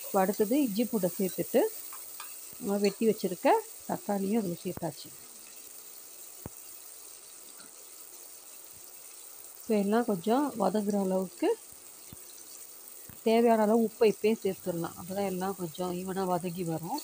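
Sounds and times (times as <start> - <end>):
masala sizzling in oil: 0.0 - 17.0.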